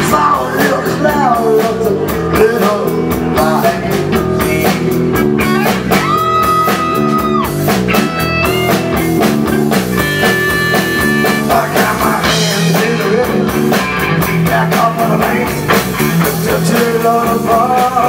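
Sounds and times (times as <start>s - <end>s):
drum kit beat: 0.0s - 18.0s
electric bass: 0.0s - 18.0s.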